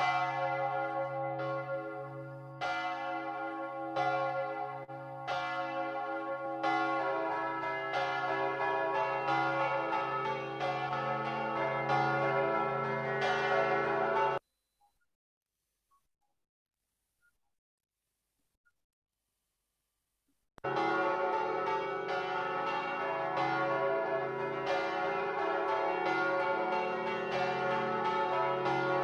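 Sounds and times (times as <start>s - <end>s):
church bells ringing: 0.0s - 14.4s, 20.6s - 29.0s.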